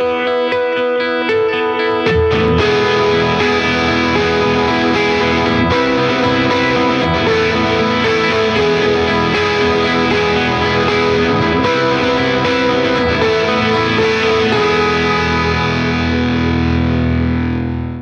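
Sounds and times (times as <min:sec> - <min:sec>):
distorted electric guitar: 0:00.0 - 0:18.0.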